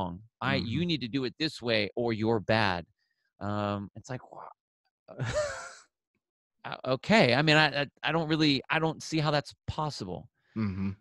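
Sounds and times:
speech: 0.0s - 2.8s, 3.4s - 4.5s, 5.2s - 5.7s, 6.7s - 11.0s
man sighing: 10.6s - 11.0s.

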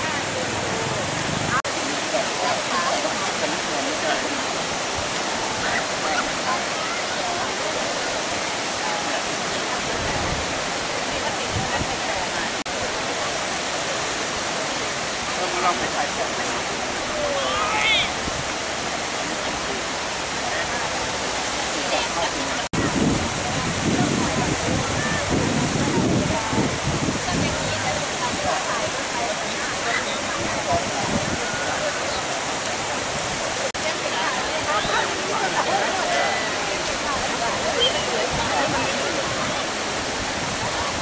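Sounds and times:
faint voices talking: 0.0s - 41.0s
surf breaking on beach: 21.6s - 41.0s.

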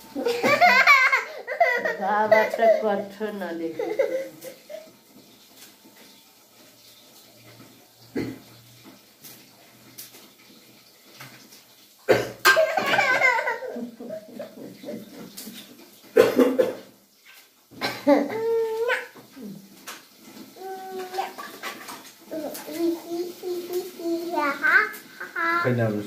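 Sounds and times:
adult laughing: 0.2s - 2.4s, 12.8s - 15.4s
toddler laughing and babbling: 0.2s - 4.9s, 12.5s - 14.6s, 18.0s - 19.5s, 20.6s - 25.7s.

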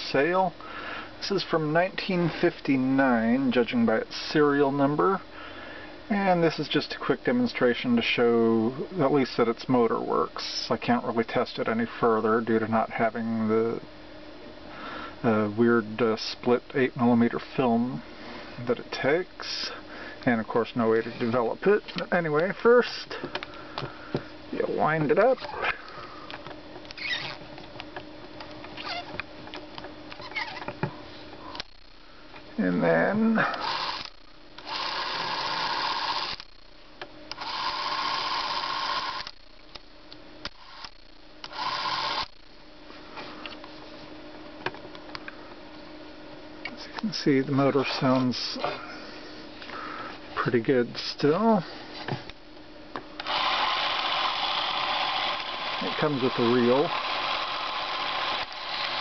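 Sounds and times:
spring motor winding strokes: 33.5s - 36.5s, 37.3s - 39.4s, 40.5s - 42.4s, 53.2s - 59.0s
small ratchet clicks: 33.6s - 36.6s.

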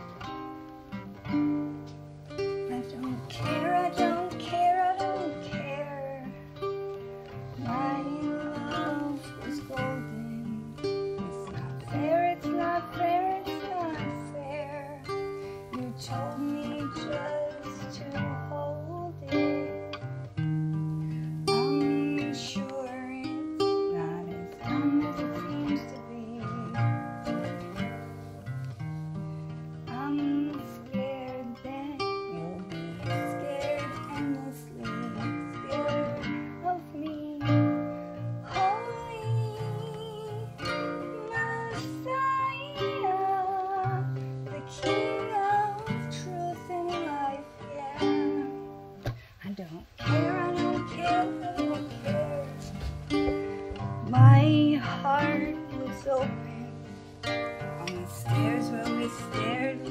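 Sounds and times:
acoustic guitar chords: 0.0s - 59.9s
woman singing wordless melody: 0.0s - 59.9s.

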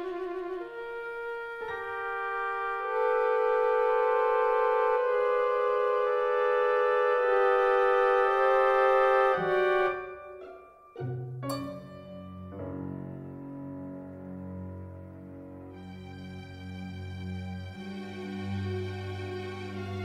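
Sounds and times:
orchestral sustained chords: 0.0s - 20.0s.

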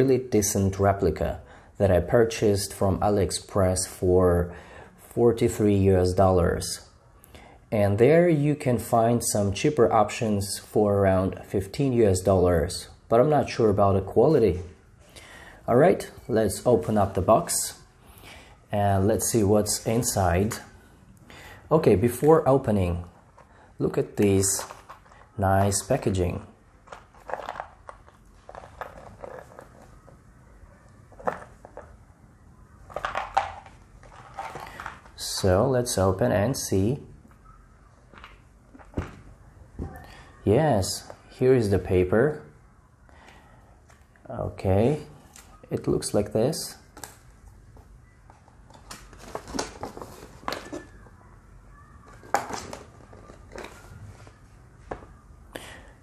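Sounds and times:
paper rustling: 24.2s - 30.2s, 32.9s - 35.5s, 48.3s - 51.1s, 52.0s - 55.0s.

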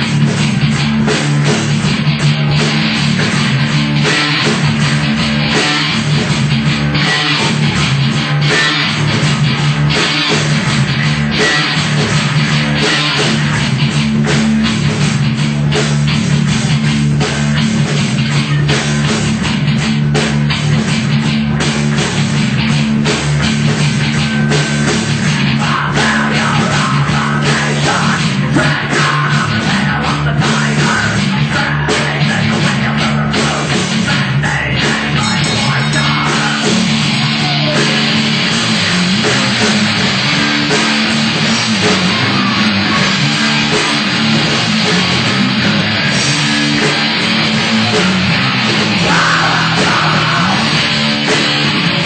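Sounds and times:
drum kit: 0.0s - 52.0s
electric guitar riff: 0.0s - 52.0s
heavy metal band playing live: 0.0s - 52.0s.

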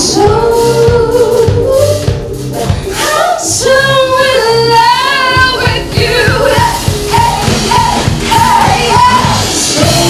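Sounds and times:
bass guitar: 0.0s - 10.0s
guitar: 0.0s - 10.0s
drum hits: 5.4s - 10.0s.

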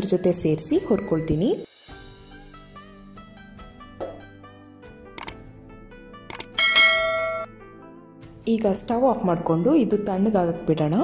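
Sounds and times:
double mouse click: 5.2s - 5.4s, 6.3s - 6.6s
bright bell ding: 6.6s - 7.5s.

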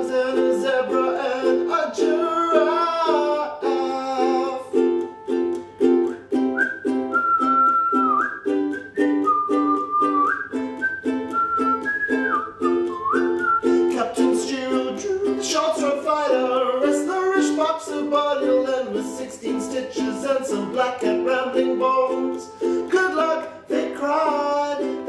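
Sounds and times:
ukulele strumming: 0.0s - 25.0s
whistled melody: 0.3s - 25.0s.

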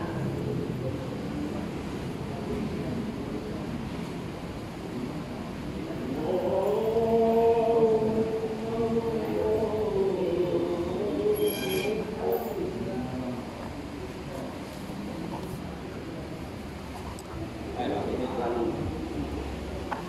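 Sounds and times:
steady background hum: 0.0s - 20.0s
brief high-pitched ring: 11.4s - 12.0s.

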